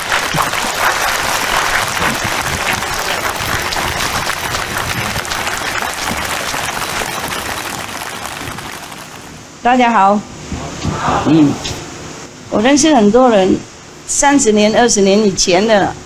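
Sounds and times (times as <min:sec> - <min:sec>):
large crowd applauding: 0:00.0 - 0:09.4.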